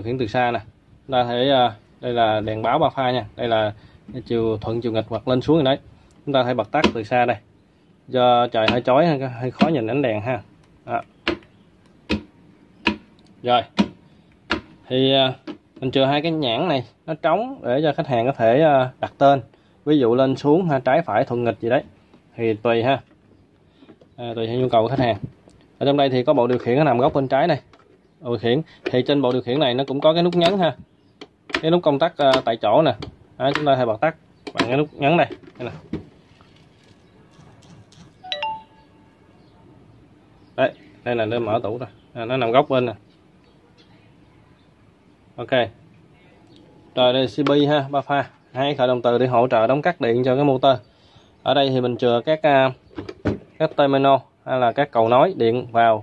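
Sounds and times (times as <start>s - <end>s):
short electronic chime: 38.2s - 39.1s.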